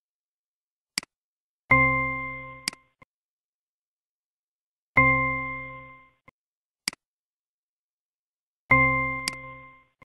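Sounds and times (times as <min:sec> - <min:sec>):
mouse click: 0:09.2 - 0:09.5.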